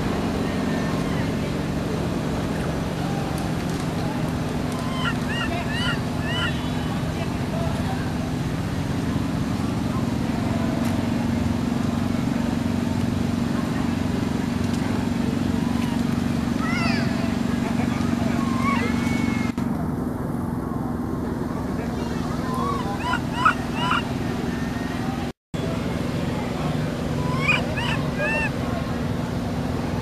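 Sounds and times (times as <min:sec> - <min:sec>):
small engine humming: 0:00.0 - 0:30.0
high squeaky chirps: 0:22.6 - 0:24.1, 0:27.2 - 0:28.5.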